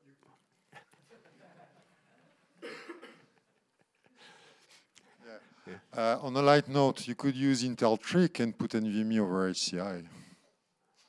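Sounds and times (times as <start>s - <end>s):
person coughing: 2.6s - 3.4s.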